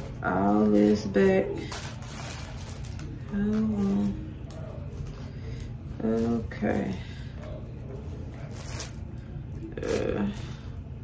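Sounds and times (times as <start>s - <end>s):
wig hair rustling: 0.0s - 11.0s.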